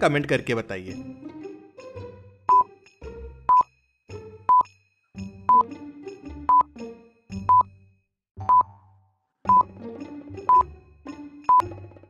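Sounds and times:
soft background music: 9.5s - 12.0s.

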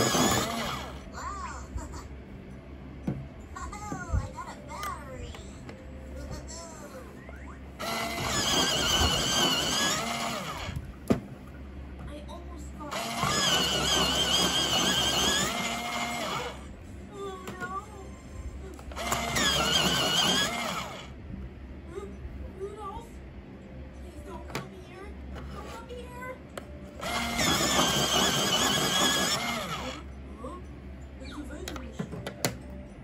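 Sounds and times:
electric pencil sharpener grinding: 0.0s - 1.1s, 7.8s - 10.8s, 12.9s - 16.7s, 18.9s - 21.1s, 27.0s - 30.0s.

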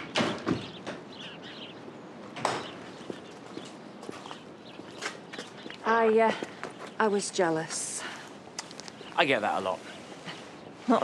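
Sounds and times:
light footsteps: 0.6s - 10.6s.

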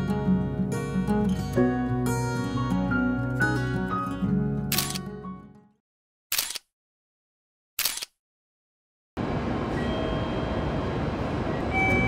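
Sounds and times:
camera shutter clicks: 4.7s - 5.1s, 6.3s - 6.7s, 7.8s - 8.2s.

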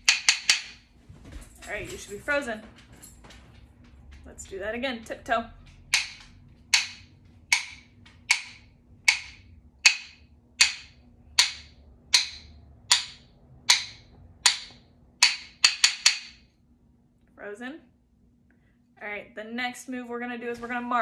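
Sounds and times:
rhythm sticks clicking: 5.7s - 16.4s.

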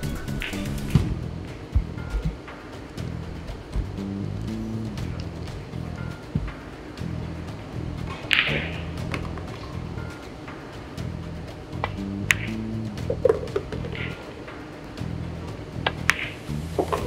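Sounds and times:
background music: 0.0s - 17.0s
pool balls clicking: 8.0s - 10.6s, 11.8s - 15.1s, 15.8s - 17.0s.

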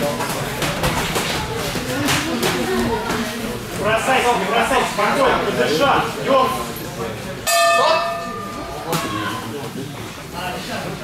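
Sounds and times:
boxing ring bell: 7.5s - 8.8s.

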